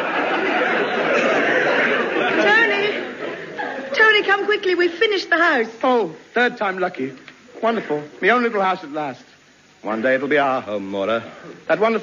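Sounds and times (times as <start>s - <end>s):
studio audience laughing: 0.0s - 4.1s.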